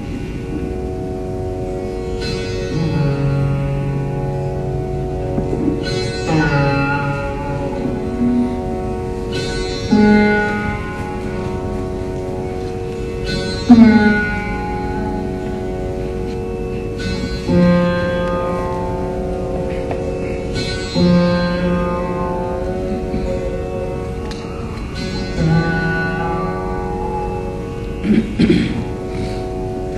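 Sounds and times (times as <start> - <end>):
drone strings: 0.0 - 29.9
plucked veena notes: 0.0 - 29.9.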